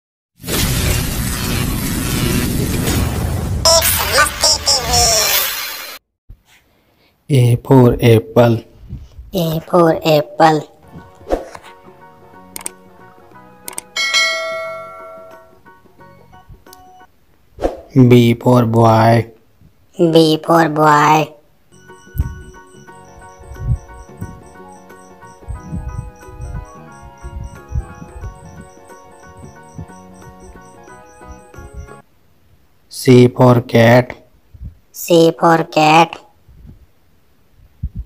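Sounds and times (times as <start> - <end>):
dense crashing noise rush: 0.4 - 4.5
soft background music: 10.8 - 17.1, 21.7 - 32.0
short clicks: 12.6 - 12.8, 13.7 - 13.9
bright bell chime: 14.0 - 15.6, 21.7 - 32.0.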